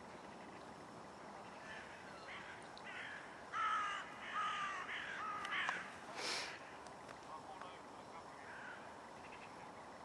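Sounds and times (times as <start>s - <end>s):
crow cawing: 1.6s - 5.9s, 8.4s - 9.5s.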